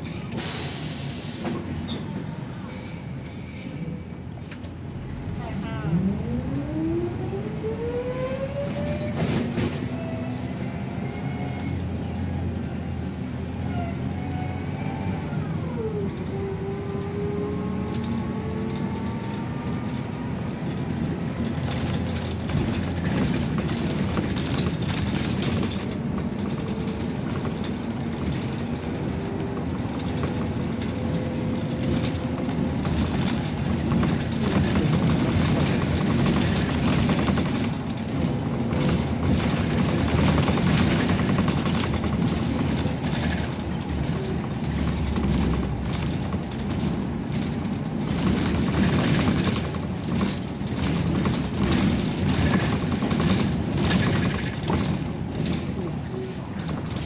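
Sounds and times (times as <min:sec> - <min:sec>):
bus body rattling: 0:00.0 - 0:05.4, 0:08.7 - 0:10.8, 0:15.4 - 0:57.0
bus engine running: 0:00.0 - 0:57.0
tyre and road noise: 0:00.0 - 0:57.0.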